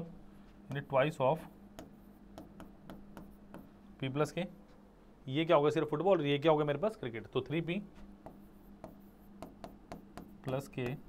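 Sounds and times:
marker pen writing on whiteboard: 0.7s - 3.8s, 7.9s - 11.0s.

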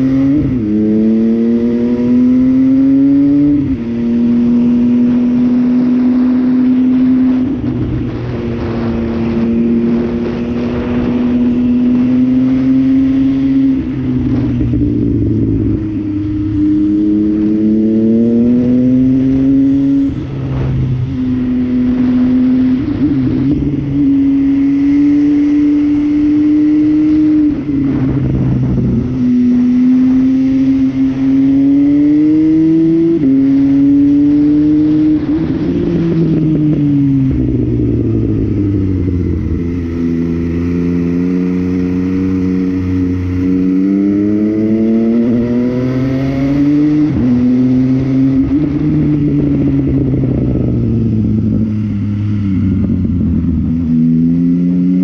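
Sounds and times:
motorcycle engine revving: 0.0s - 55.0s
wind rush: 0.0s - 55.0s.

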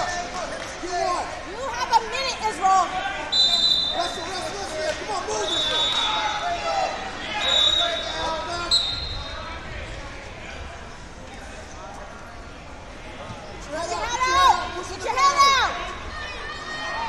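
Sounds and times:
referee whistle blasts: 3.3s - 4.2s, 5.4s - 6.4s, 7.4s - 9.4s.

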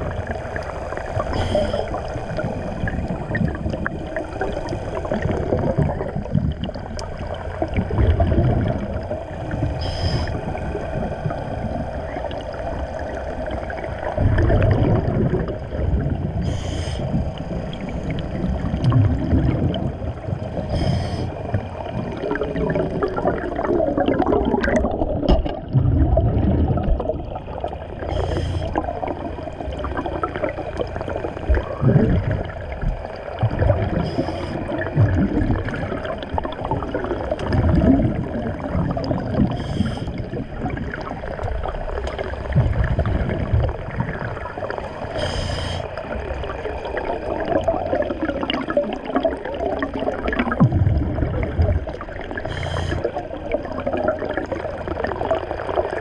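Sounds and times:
exhaled bubbles gurgling: 0.0s - 56.0s
regulator inhalation hiss: 0.7s - 2.0s, 9.5s - 10.6s, 16.4s - 17.1s, 20.7s - 21.4s, 28.1s - 28.8s, 34.0s - 34.7s, 39.6s - 40.2s, 45.1s - 46.0s, 52.4s - 53.1s.

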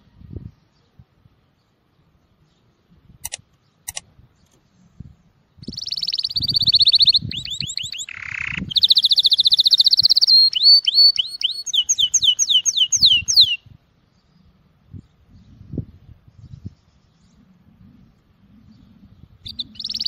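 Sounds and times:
canary singing: 5.6s - 13.7s, 19.4s - 20.0s.

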